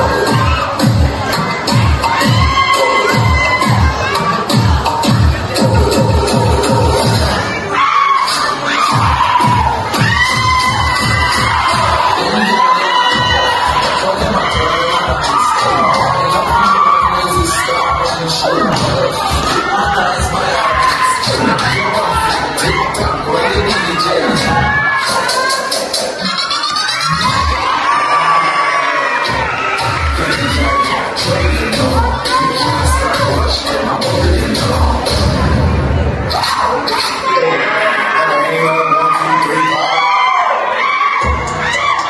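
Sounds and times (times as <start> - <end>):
audience cheering and shouting: 0.0 - 42.0
dance music over loudspeakers: 0.0 - 42.0.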